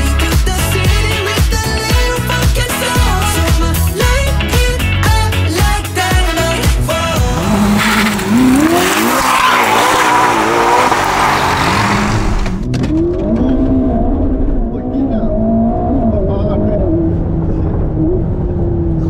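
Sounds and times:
music: 0:00.0 - 0:08.5
car engines revving hard: 0:06.9 - 0:19.0.

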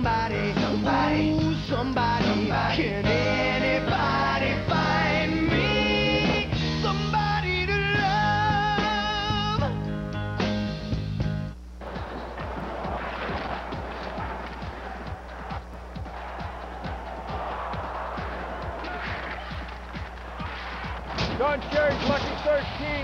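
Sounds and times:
hockey sticks and puck cracking: 0:11.8 - 0:22.5
crowd din: 0:11.8 - 0:22.8.

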